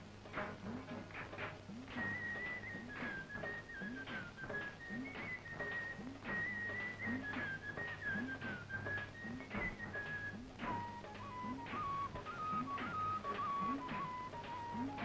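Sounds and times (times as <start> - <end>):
steady drum beat: 0.0 - 15.0
whistled melody: 0.4 - 15.0.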